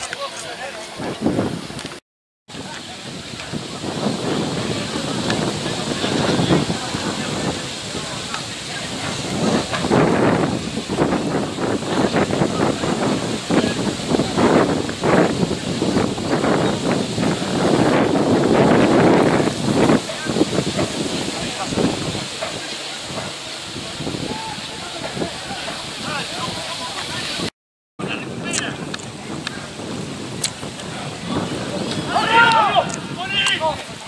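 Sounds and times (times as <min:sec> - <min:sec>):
wind buffeting microphone: 0:00.0 - 0:34.0
distant players shouting: 0:31.8 - 0:33.9.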